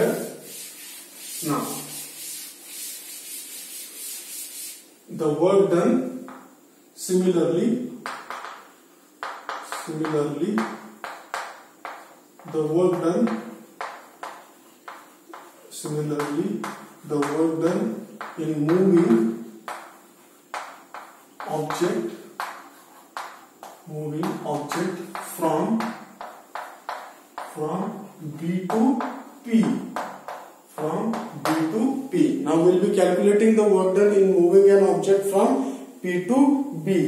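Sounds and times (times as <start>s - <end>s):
duster rubbing on chalkboard: 0.0s - 5.0s, 9.2s - 29.3s.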